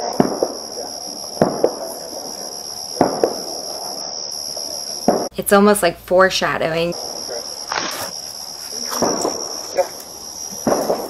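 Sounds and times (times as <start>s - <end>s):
crickets trilling: 0.0s - 11.0s.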